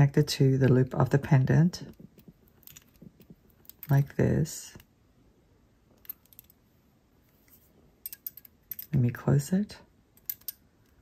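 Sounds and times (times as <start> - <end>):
metallic clicks of pliers: 10.2 - 11.0.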